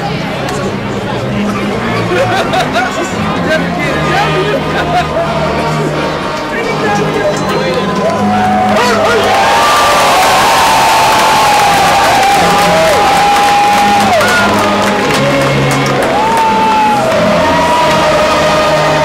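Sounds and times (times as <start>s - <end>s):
brass band music: 1.2s - 19.0s
stadium crowd cheering: 2.0s - 19.0s.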